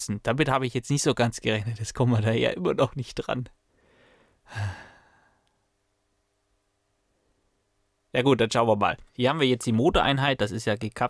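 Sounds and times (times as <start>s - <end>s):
man sighing: 3.9s - 5.4s.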